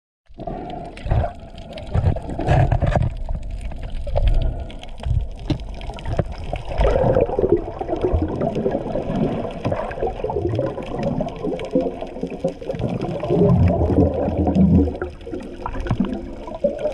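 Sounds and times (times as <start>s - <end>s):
underwater sloshing and bubbling: 0.3s - 16.9s.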